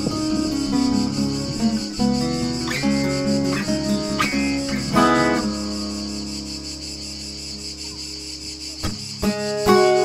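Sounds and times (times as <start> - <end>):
cicadas buzzing: 0.0 - 10.0
fingerpicked acoustic guitar: 0.0 - 10.0.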